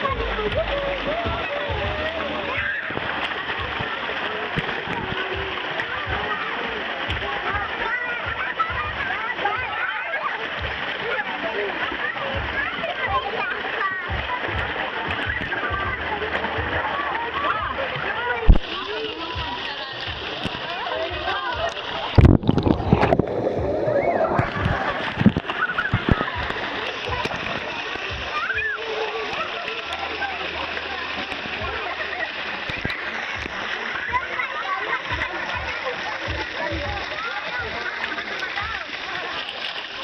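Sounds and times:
children chattering and calling: 0:00.0 - 0:40.0
water splashing in a pool: 0:00.0 - 0:40.0.

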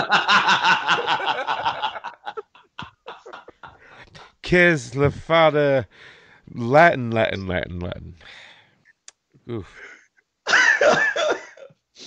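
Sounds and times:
people laughing: 0:00.0 - 0:03.9.

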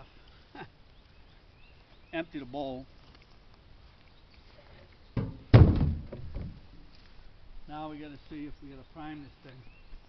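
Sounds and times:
dull thumps: 0:05.2 - 0:06.7.

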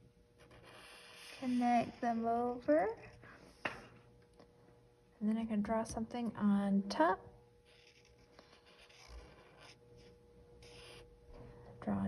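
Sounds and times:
marker scratching on paper: 0:00.4 - 0:02.3, 0:07.6 - 0:11.1.

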